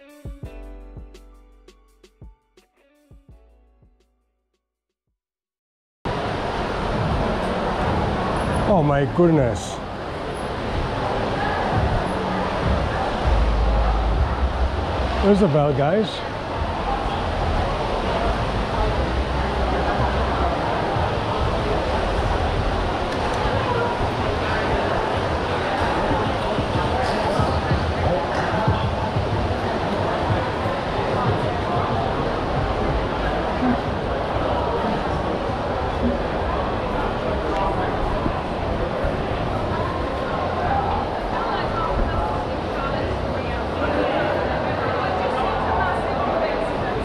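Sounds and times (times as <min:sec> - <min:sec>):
babble of shoppers talking: 0:06.1 - 0:47.0
steady low rumble: 0:11.5 - 0:15.3, 0:16.3 - 0:25.4.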